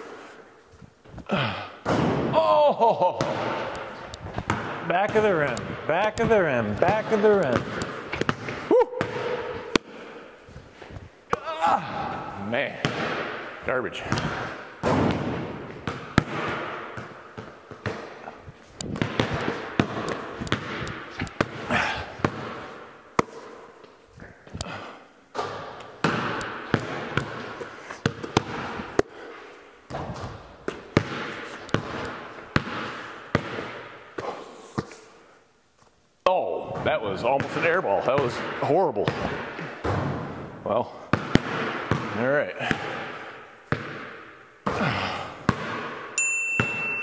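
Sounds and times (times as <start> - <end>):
ball hitting backboard and rim: 1.8 - 2.4, 3.2 - 9.9, 12.7 - 23.4, 25.3 - 29.1, 29.9 - 34.4, 36.7 - 40.5, 41.1 - 47.0
basketballs bouncing on concrete: 3.0 - 10.1, 11.3 - 23.5, 24.4 - 29.2, 29.9 - 34.4, 36.6 - 47.0.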